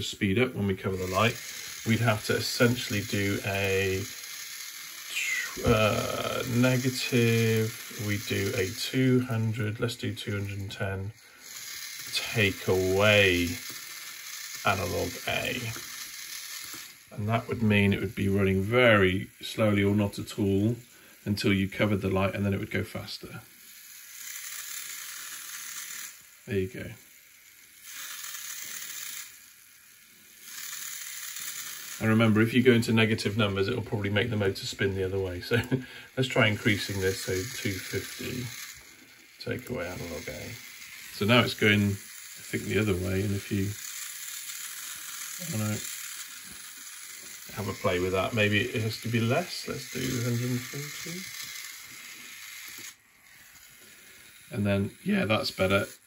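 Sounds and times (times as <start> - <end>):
small gear motor whirring: 0.0 - 56.0.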